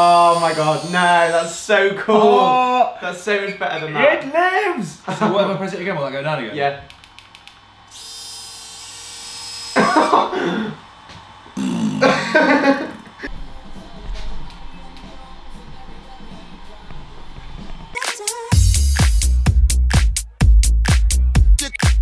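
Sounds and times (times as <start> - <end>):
electric motor whine: 0.0 - 1.6, 7.0 - 18.0
people laughing and exclaiming: 11.9 - 13.3
background music with low bass: 13.3 - 22.0.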